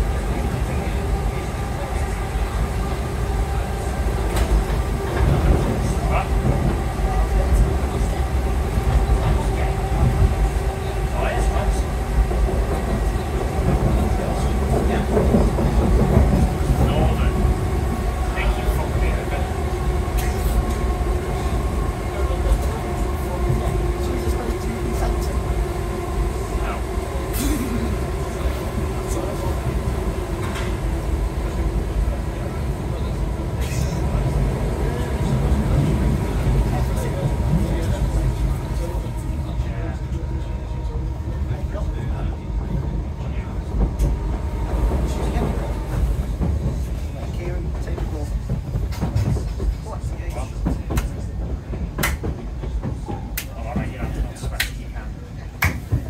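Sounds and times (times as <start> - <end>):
steady train hum: 0.0 - 56.0
train wheels rumbling on rail: 0.0 - 56.0.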